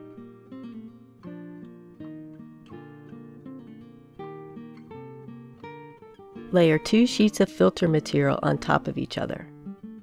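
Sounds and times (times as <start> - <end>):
acoustic guitar picking: 0.0 - 10.0.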